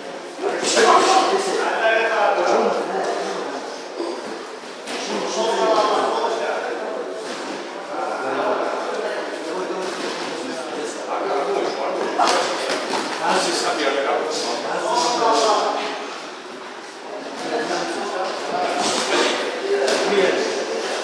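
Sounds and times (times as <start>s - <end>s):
people talking indistinctly: 0.0s - 21.0s.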